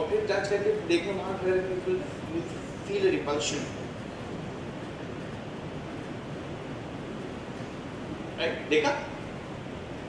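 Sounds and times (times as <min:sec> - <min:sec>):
steady room noise hiss: 0:00.0 - 0:10.0.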